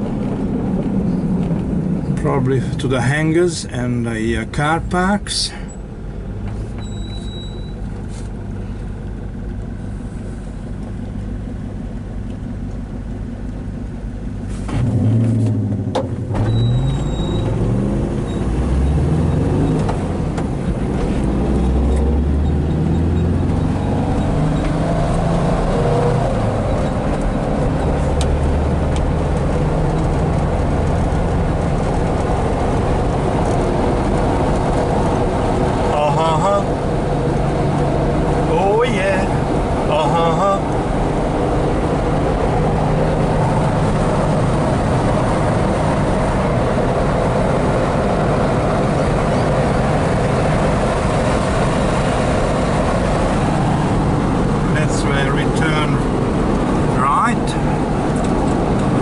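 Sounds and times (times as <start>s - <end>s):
van engine idling and revving: 0.0s - 59.0s.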